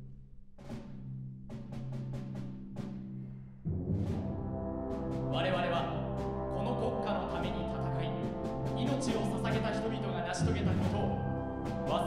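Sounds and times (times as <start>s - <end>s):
tubas in the bass: 3.2s - 12.0s
wind band playing brass chord: 4.1s - 12.0s.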